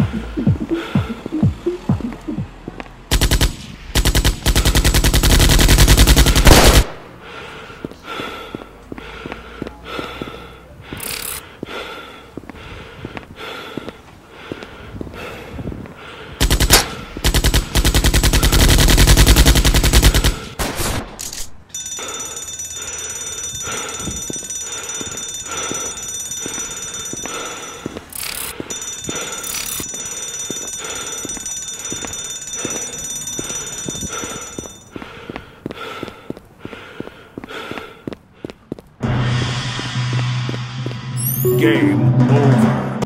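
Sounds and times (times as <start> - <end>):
automatic gunfire: 3.1 - 7.0, 16.4 - 21.1.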